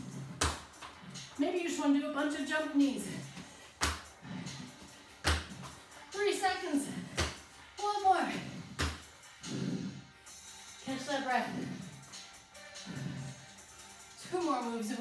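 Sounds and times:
background music: 0.0 - 15.0
feet thudding on workout mat: 3.2 - 5.9, 6.9 - 7.5, 8.6 - 9.1.

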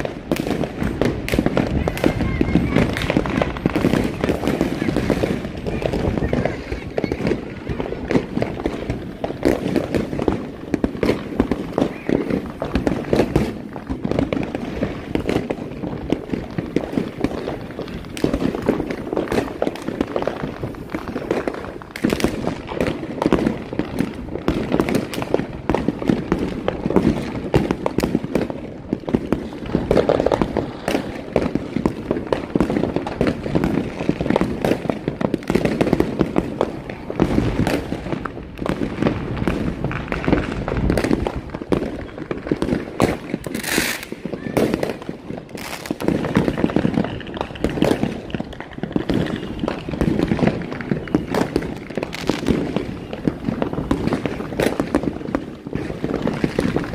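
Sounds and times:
fireworks bangs and crackles: 0.0 - 56.9.

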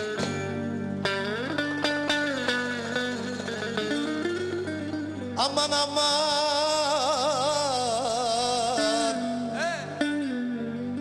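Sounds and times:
plucked lute folk melody: 0.0 - 11.0.

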